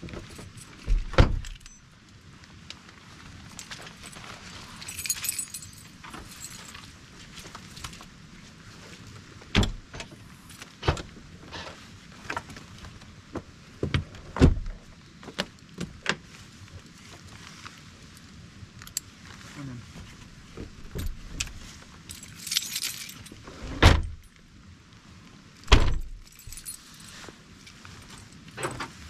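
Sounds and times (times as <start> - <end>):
low outdoor background noise: 0.0 - 29.0
jangling metallic rattle: 3.9 - 6.9, 22.1 - 23.4, 25.9 - 27.2
vehicle rear door clunk: 9.6 - 10.1, 25.7 - 26.1.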